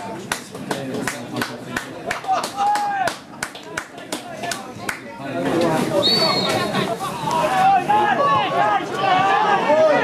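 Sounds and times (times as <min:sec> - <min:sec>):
crowd clapping: 0:00.0 - 0:05.1
people talking: 0:00.0 - 0:10.0.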